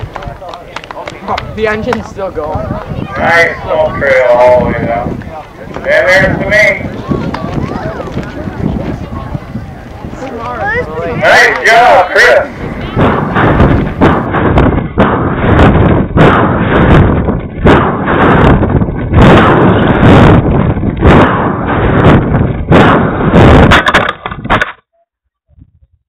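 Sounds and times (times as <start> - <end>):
wind buffeting microphone: 0.0 - 24.6.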